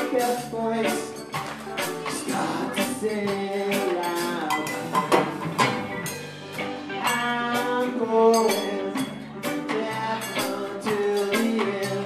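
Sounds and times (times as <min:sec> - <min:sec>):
bending lead melody: 0:00.0 - 0:12.0
drum kit: 0:00.0 - 0:12.0
electric bass: 0:00.0 - 0:12.0
guitar: 0:00.0 - 0:12.0.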